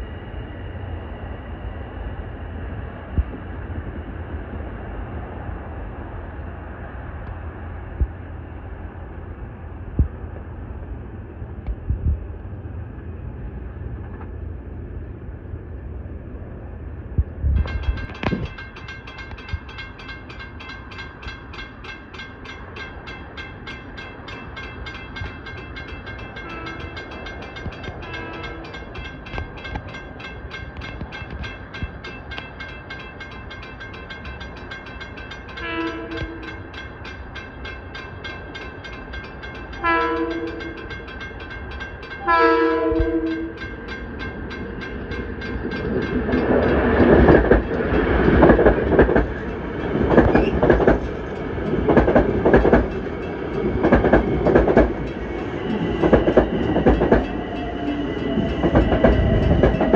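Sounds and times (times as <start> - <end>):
railroad crossing bell ringing: 17.6 - 59.9
train horn blasts: 26.4 - 27.1, 28.0 - 28.8, 35.6 - 36.7, 39.8 - 40.8, 42.2 - 43.6.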